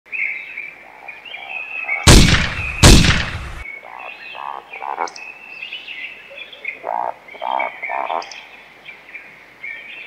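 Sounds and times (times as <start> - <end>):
birds chirping: 0.1 - 10.0
loud gunshots: 2.1 - 3.6.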